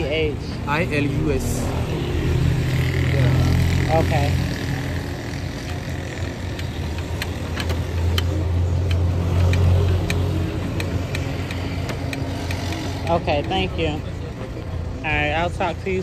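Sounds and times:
engine droning: 0.0 - 16.0.

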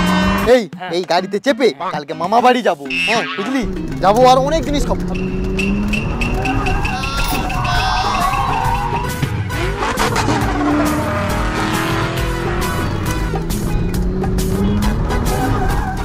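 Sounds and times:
engine revving: 0.0 - 0.5, 3.6 - 16.0
background music with steady beat: 0.0 - 16.0
tyres squealing: 2.8 - 9.2, 14.4 - 16.0.

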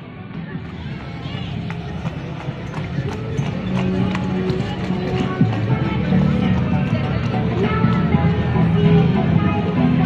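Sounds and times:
background music: 0.0 - 10.0
horse hooves clip-clopping on brick: 0.8 - 8.2.

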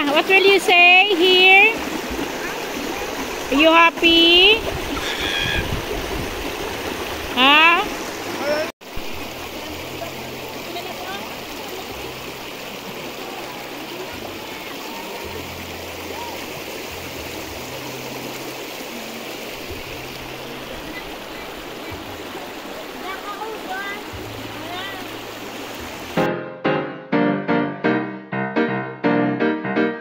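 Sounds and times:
river flowing over stones: 0.0 - 26.2.

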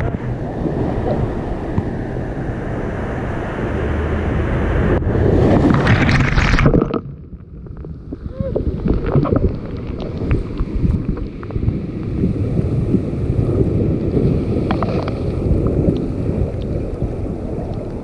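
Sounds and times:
ocean surf: 0.0 - 7.0, 7.6 - 18.0
wind buffeting microphone: 0.0 - 18.0
water trickling among rocks: 5.6 - 11.8.

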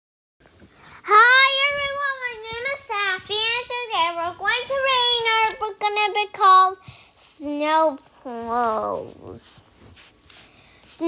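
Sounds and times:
child's sing-song voice: 1.0 - 9.6.

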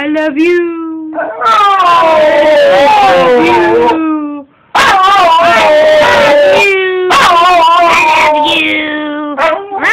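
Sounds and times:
dog howling and whining: 1.2 - 4.0, 4.8 - 9.9.

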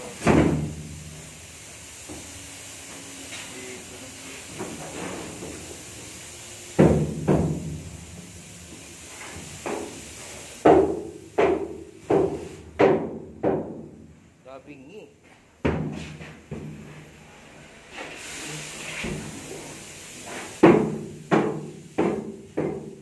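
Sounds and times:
steady hiss: 0.0 - 23.0.

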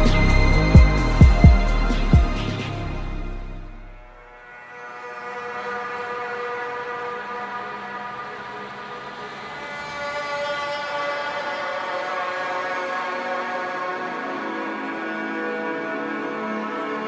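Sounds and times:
sustained synth chord: 0.0 - 17.0.

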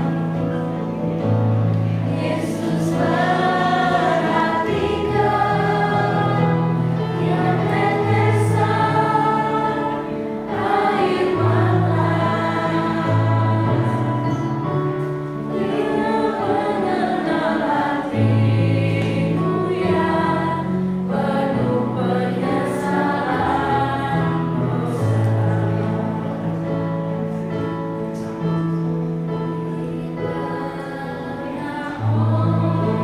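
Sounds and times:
group of women singing: 2.0 - 14.5, 15.5 - 26.9, 29.6 - 33.0.

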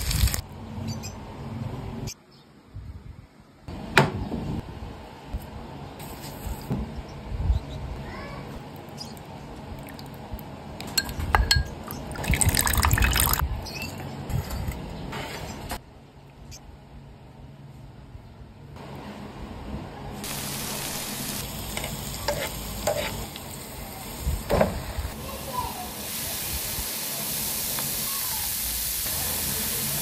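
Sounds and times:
liquid pouring or stirring: 9.8 - 10.2, 10.8 - 13.4
spoon clinking against glass bowl: 10.9 - 11.9.

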